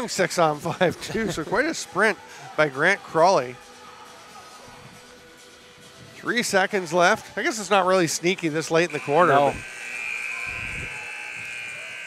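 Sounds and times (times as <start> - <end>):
arena buzzer horn: 8.8 - 12.0.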